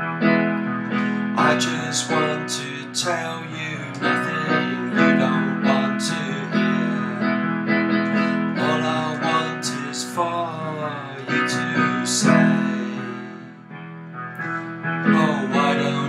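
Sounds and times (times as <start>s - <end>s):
digital piano playing: 0.0s - 16.0s.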